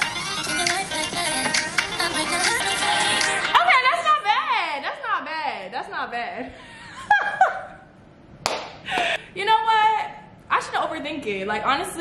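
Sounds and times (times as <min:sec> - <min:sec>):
woman laughing: 0:06.6 - 0:07.9
hand clap: 0:08.4 - 0:09.1.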